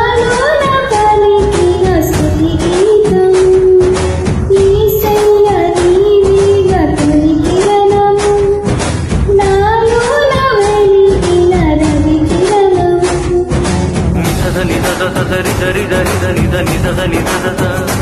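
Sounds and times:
woman singing: 0.0s - 8.7s, 9.3s - 13.7s
karaoke backing track: 0.0s - 18.0s.

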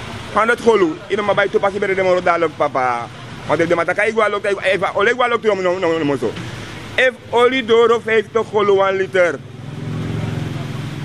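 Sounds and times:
vehicle engine humming: 0.0s - 11.0s
man speaking: 0.3s - 9.4s.

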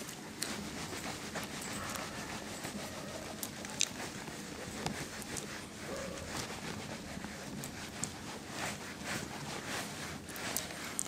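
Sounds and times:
eraser scrubbing a whiteboard: 0.0s - 11.0s.

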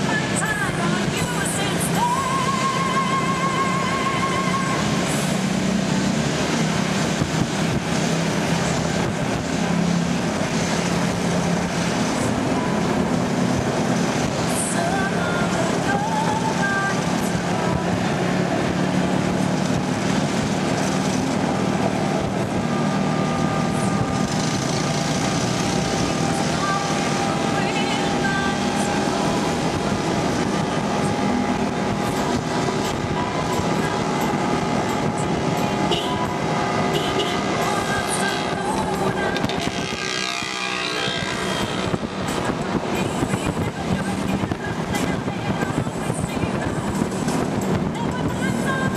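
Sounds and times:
vehicle engine and road noise: 0.0s - 48.9s.

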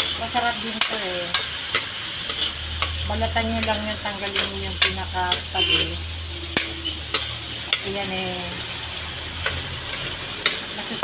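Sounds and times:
food sizzling in wok: 0.0s - 11.0s
spatula stirring in wok: 0.0s - 11.0s.

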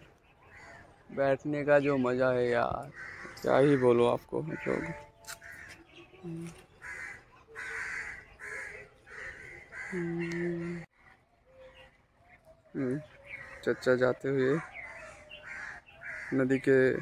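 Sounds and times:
birds calling: 0.0s - 17.0s.

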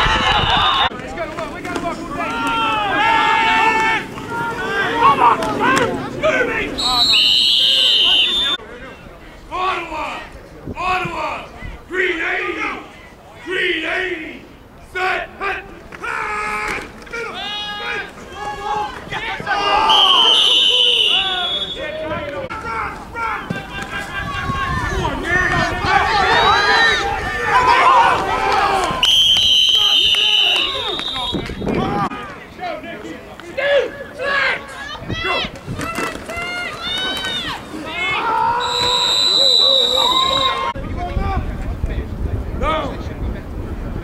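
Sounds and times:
people yelling excitedly: 0.0s - 8.6s, 15.0s - 32.8s, 33.5s - 41.4s
players shouting: 0.0s - 41.5s
referee's whistle long blast: 6.8s - 8.6s, 19.8s - 22.0s, 29.0s - 31.5s, 38.6s - 40.7s.

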